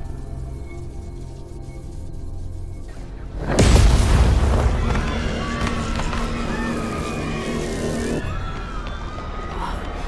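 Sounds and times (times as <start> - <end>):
music: 0.0 - 10.0
explosion boom with deep rumble: 3.6 - 5.3.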